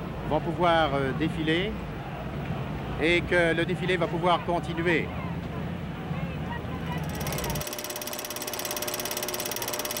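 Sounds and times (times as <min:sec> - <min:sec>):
fast mechanical clicking: 0:06.9 - 0:10.0.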